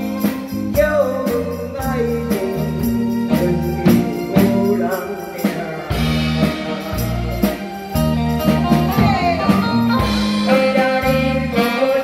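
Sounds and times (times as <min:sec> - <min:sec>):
drums: 0:00.0 - 0:12.0
keyboard: 0:00.0 - 0:12.0
live band playing: 0:00.0 - 0:12.0
saxophone: 0:03.8 - 0:12.0
man and woman singing duet: 0:10.5 - 0:12.0.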